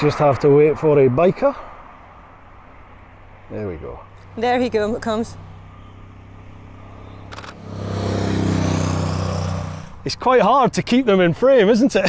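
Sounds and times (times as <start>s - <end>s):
motorcycle passing by: 4.6s - 10.2s
camera shutter clicks: 7.3s - 7.7s.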